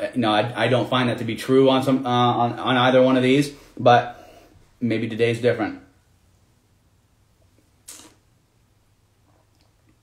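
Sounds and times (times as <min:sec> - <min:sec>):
person sipping from glass: 0:07.9 - 0:08.2.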